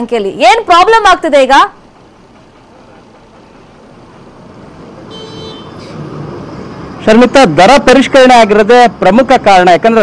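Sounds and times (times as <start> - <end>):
street traffic noise: 0.0 - 10.0
high-pitched horn toot: 5.1 - 6.0.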